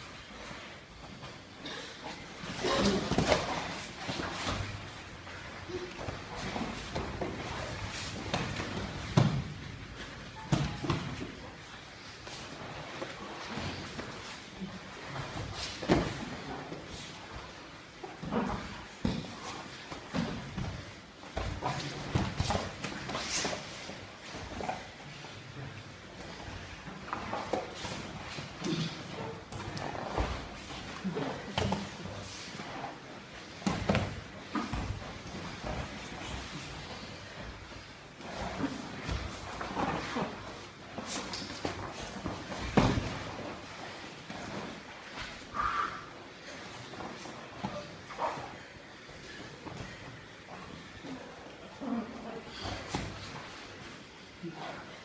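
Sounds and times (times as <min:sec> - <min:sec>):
bodies shifting on mats: 0:00.1 - 0:45.5, 0:46.1 - 0:54.8
bodies thumping on foam mats: 0:06.0 - 0:09.8, 0:38.2 - 0:45.4.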